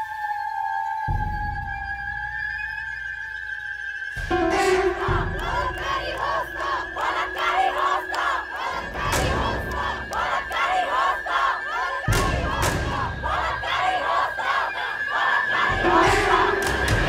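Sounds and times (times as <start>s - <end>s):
crowd chanting slogans: 4.3s - 17.0s.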